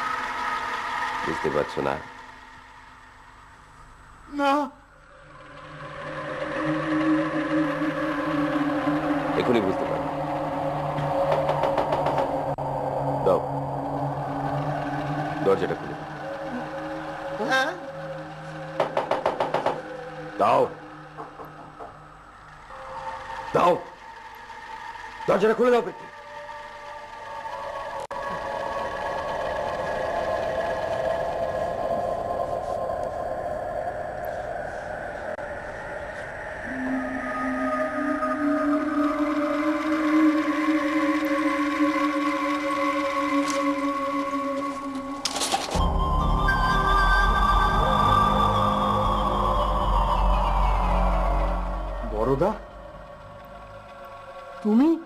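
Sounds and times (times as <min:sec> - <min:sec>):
hum of held tones: 0:00.0 - 0:55.0
sustained film score drone: 0:00.0 - 0:55.0.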